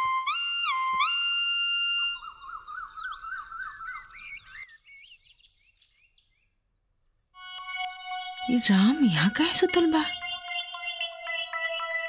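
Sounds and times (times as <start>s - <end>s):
birds chirping and warbling: 2.2s - 7.4s, 8.5s - 12.0s
sustained musical chord: 7.4s - 12.0s.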